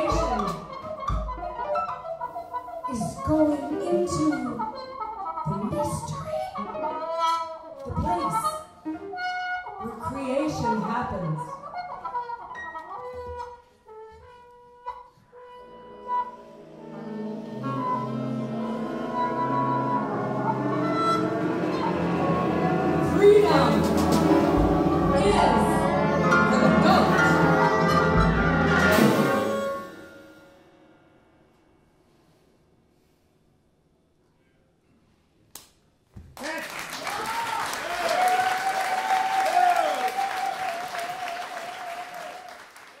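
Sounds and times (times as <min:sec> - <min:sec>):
jazz big band sustained notes: 0:13.9 - 0:30.9
audience applause: 0:36.4 - 0:43.0
long held shout: 0:36.5 - 0:42.3
whoops: 0:37.0 - 0:42.6.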